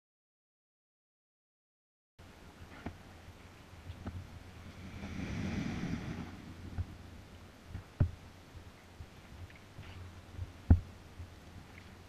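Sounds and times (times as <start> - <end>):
paddling in a canoe: 2.2 - 12.0
paddle swishing through water: 3.9 - 8.0.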